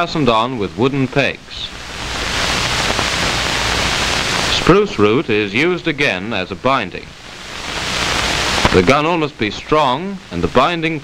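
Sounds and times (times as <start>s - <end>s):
loud steady rushing hiss: 0.0s - 11.0s.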